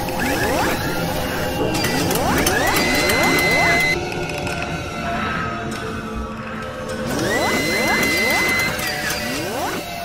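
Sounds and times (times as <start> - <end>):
rising synthetic sweeps: 0.2 - 4.0, 7.1 - 9.9.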